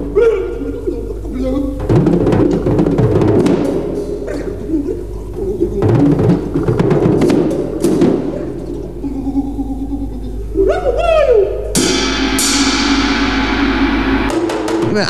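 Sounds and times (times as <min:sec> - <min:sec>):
drum kit played fast: 0:01.7 - 0:08.6, 0:11.8 - 0:15.0
cymbal crashes: 0:11.7 - 0:15.0.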